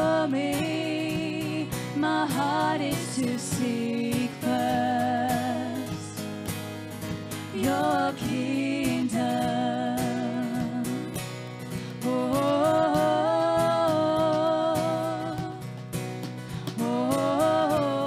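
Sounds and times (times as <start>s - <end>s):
women singing with vibrato: 0.0s - 6.4s, 7.3s - 15.8s, 16.4s - 18.0s
acoustic guitar: 0.0s - 18.0s
drums: 0.0s - 18.0s.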